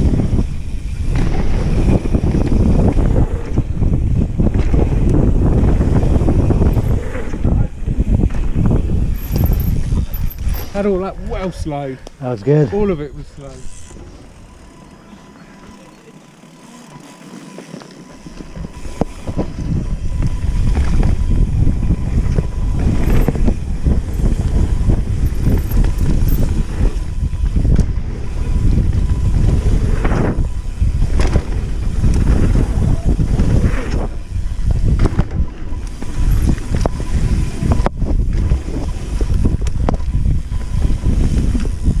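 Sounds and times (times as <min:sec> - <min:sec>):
bike knocking and rattling: 0:00.0 - 0:12.2, 0:12.8 - 0:42.0
wind rumble on microphone: 0:00.0 - 0:14.7, 0:18.1 - 0:42.0
bike tyres rolling on dirt: 0:00.0 - 0:42.0.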